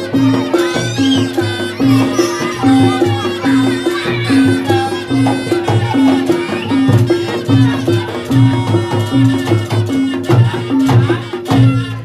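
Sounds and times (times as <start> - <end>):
drumming: 0.0 - 12.0
gamelan music: 0.0 - 12.0.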